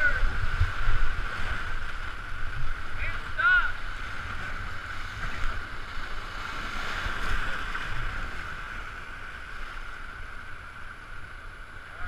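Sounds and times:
wind buffeting microphone: 0.0s - 8.7s
rushing whitewater: 0.0s - 12.0s.

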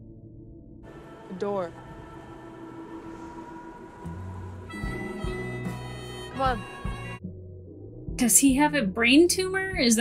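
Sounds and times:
ambient drone of held tones: 0.0s - 7.8s.

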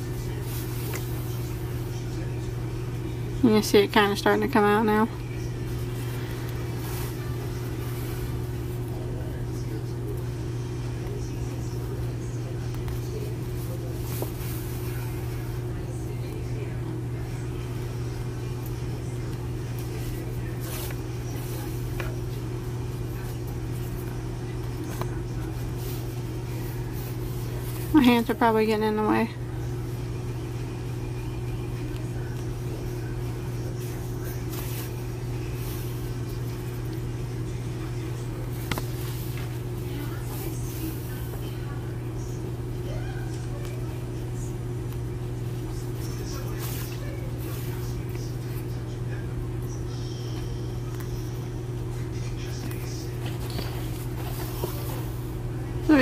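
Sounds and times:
faint soft rustles: 0.0s - 2.2s, 5.6s - 9.4s, 12.8s - 15.8s, 33.7s - 37.0s
low machine hum: 0.0s - 56.0s.

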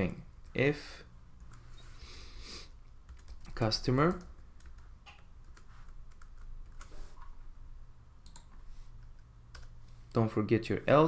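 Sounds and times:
keyboard typing: 3.0s - 6.9s, 8.2s - 9.8s.

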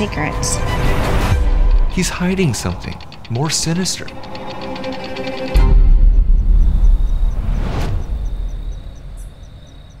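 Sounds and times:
faint steady ticking: 0.9s - 10.0s.

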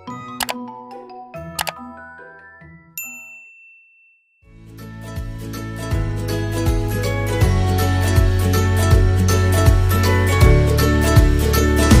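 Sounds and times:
bright bell ding: 3.0s - 4.2s.

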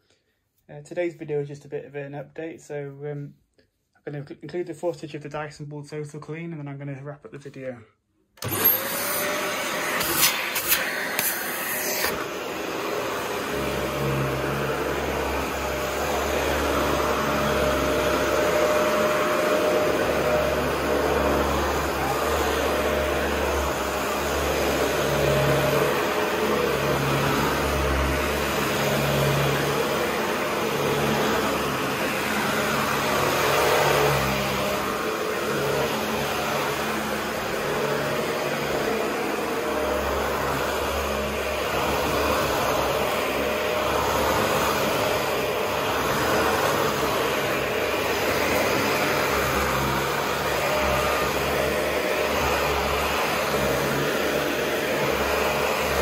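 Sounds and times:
vacuum cleaner on carpet: 8.4s - 56.0s.

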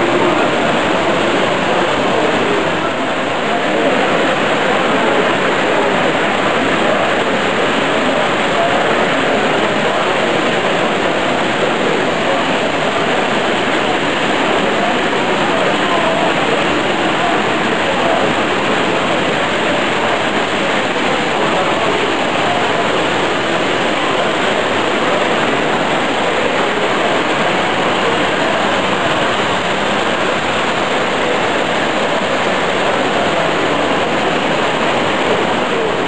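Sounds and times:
hall crowd hubbub: 0.0s - 36.0s.

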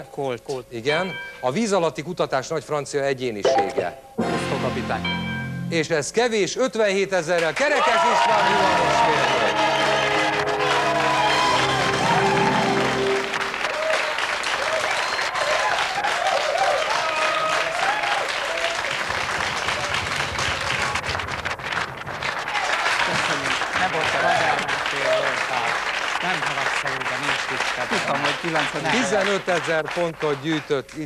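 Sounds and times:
audience applauding: 7.3s - 31.0s
voices talking: 27.8s - 29.4s.

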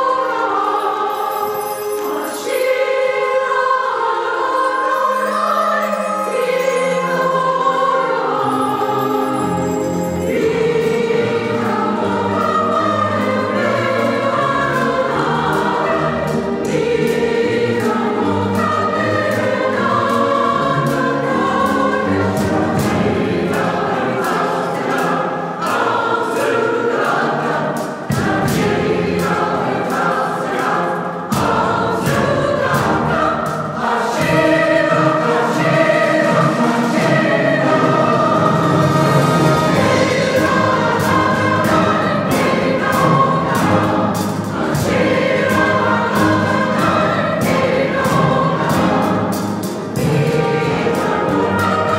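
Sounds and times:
choir singing: 0.0s - 51.9s
symphony orchestra playing: 0.0s - 51.9s.

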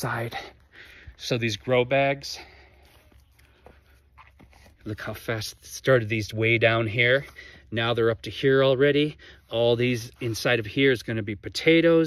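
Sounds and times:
man speaking: 0.0s - 0.6s, 1.2s - 2.5s, 4.8s - 12.0s
faint soft crunches and rustles: 1.2s - 5.8s.

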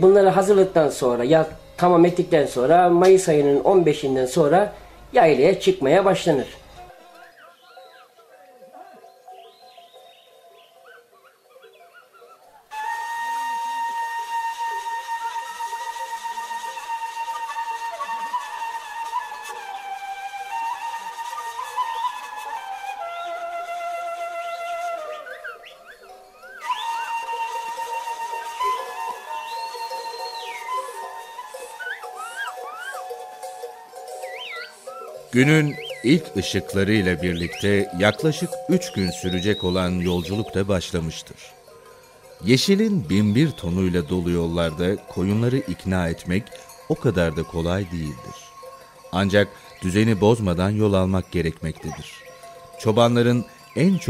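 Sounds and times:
flute melody: 9.2s - 53.0s.

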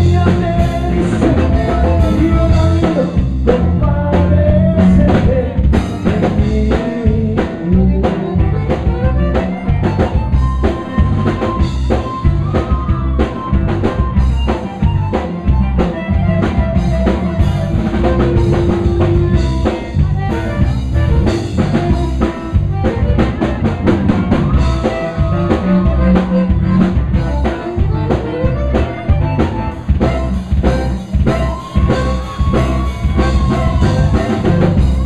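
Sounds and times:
button accordion: 0.0s - 35.0s
drum kit beat: 0.0s - 35.0s
electric bass: 0.0s - 35.0s.

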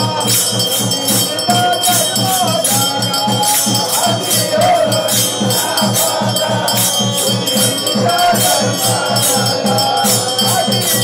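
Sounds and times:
drums beating quick rhythm: 0.0s - 11.0s
jingling percussion and bells: 0.0s - 11.0s.

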